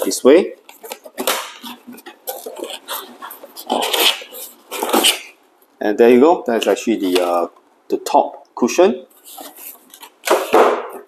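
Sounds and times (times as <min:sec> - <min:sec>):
packing cushion scraping cardboard box: 0:00.8 - 0:05.4.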